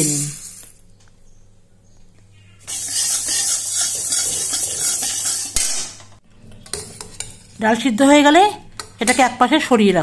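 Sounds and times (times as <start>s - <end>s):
lentils scraping in metal wok: 2.7s - 5.9s.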